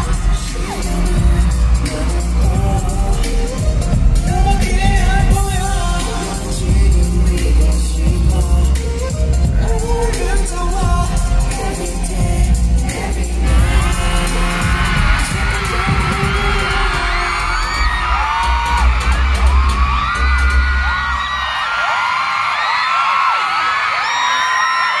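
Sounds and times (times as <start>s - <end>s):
pop music with heavy bass: 0.0s - 21.7s
crowd screaming: 0.0s - 25.0s.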